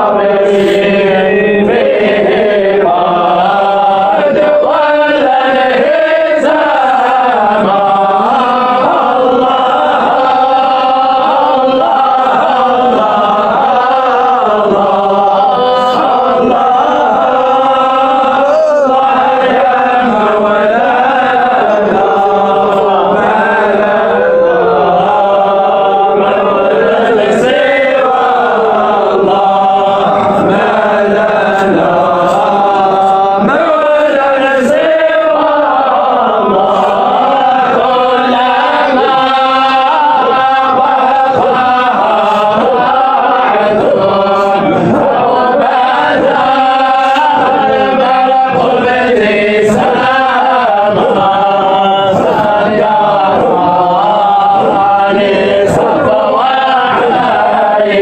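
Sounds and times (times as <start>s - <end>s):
men chanting devotional hymn: 0.0s - 58.0s.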